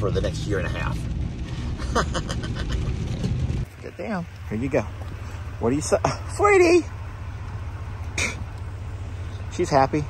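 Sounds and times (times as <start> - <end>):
low rumble inside truck cab: 0.0 - 10.0.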